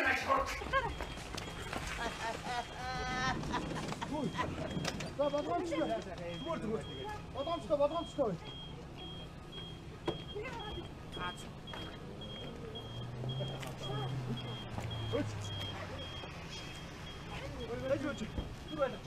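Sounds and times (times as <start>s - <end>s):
vehicle engine hum: 0.1s - 19.0s
vehicle warning beeper: 0.3s - 19.0s.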